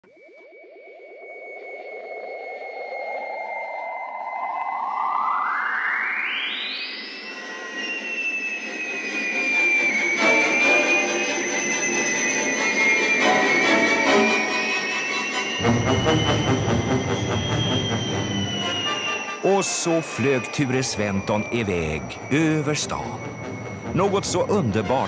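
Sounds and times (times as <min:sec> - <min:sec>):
high held whistle: 0:00.0 - 0:25.0
synthesized rising whirr: 0:00.0 - 0:25.0
music: 0:10.2 - 0:19.4, 0:22.7 - 0:25.0.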